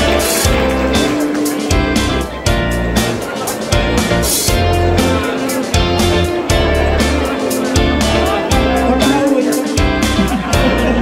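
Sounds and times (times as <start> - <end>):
backing track with deep bass: 0.0 - 11.0.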